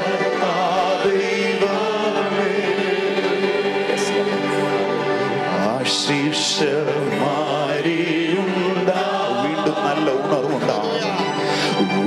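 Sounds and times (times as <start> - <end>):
man and choir singing: 0.0 - 12.0.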